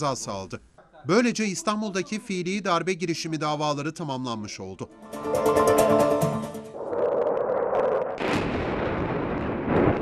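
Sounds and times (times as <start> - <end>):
musical news sting: 4.9 - 6.8
explosions and gunfire: 8.2 - 10.0.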